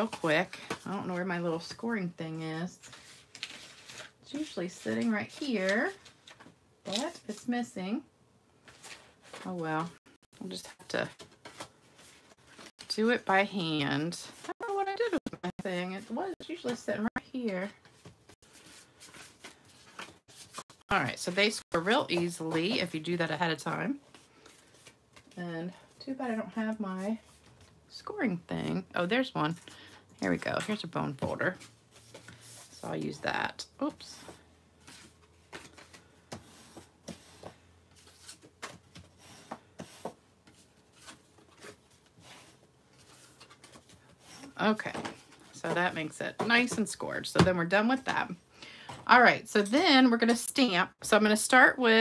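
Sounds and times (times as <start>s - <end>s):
paper rustling: 2.8s - 7.1s
cardstock rustling and rubbing: 17.7s - 22.9s.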